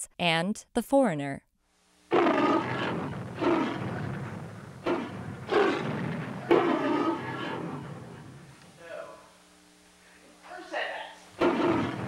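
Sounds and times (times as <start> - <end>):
dinosaur growling roars: 2.1 - 8.5, 11.4 - 12.0.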